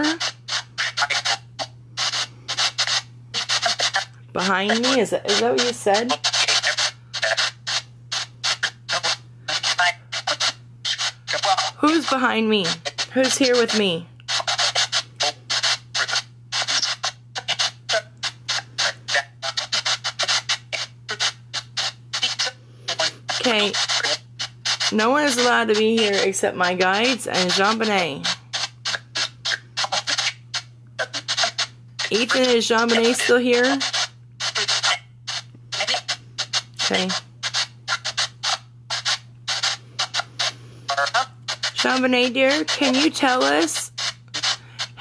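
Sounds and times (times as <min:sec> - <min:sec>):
choppy radio static bursts: 0:00.0 - 0:45.0
steady low hum: 0:00.0 - 0:45.0.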